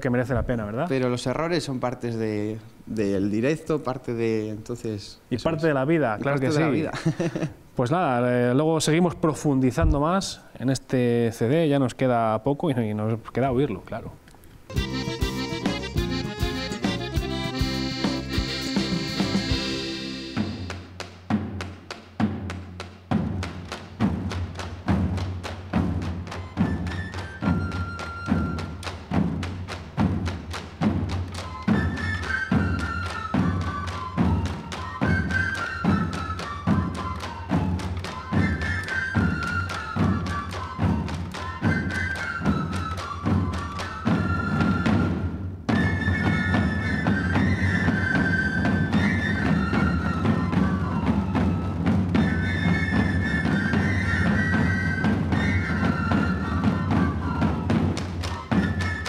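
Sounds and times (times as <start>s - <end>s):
pipe melody: 14.7s - 20.9s
tabor drums beating: 14.7s - 59.0s.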